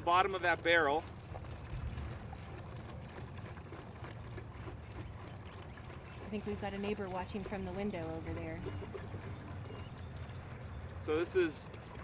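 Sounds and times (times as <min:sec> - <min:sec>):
wind rumbling on microphone: 0:01.4 - 0:02.7.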